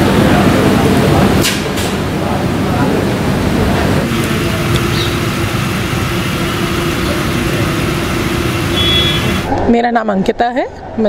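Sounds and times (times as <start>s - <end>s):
constant low hum: 0.0s - 9.6s
loud background noise: 0.0s - 11.0s.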